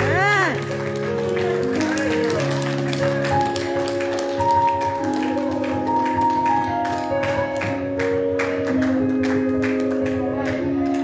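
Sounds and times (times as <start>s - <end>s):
hands clapping along: 0.0s - 11.0s
keyboard playing organ-like chords: 0.0s - 11.0s.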